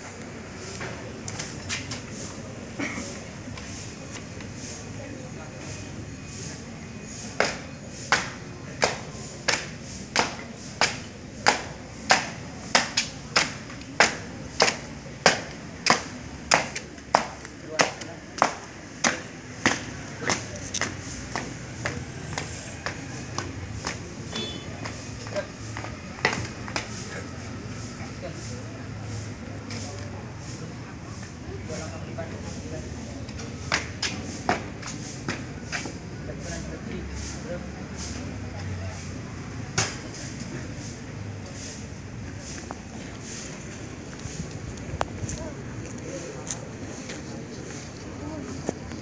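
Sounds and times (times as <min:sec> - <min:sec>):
marching footsteps on concrete: 0:07.3 - 0:27.3, 0:33.2 - 0:36.1.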